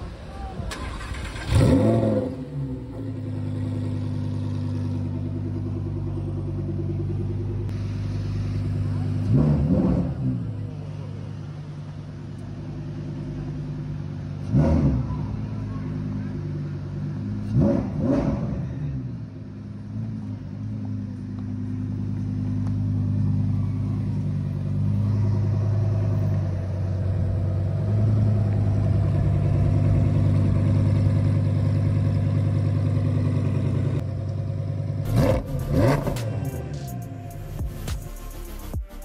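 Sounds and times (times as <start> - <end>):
car engine running at low revs: 0.0 - 39.0.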